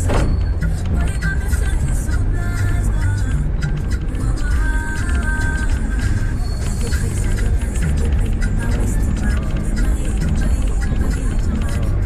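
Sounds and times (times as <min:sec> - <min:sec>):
car engine and road rumble: 0:00.0 - 0:12.0
music playing: 0:00.0 - 0:12.0.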